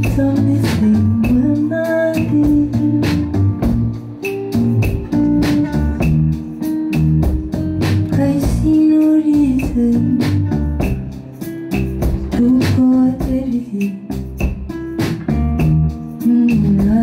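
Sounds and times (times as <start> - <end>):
woman singing: 0.0 - 3.6, 8.0 - 11.0, 12.3 - 14.2, 16.1 - 17.0
acoustic guitar: 0.0 - 17.0
bass line: 0.0 - 17.0
regular beat: 0.0 - 17.0.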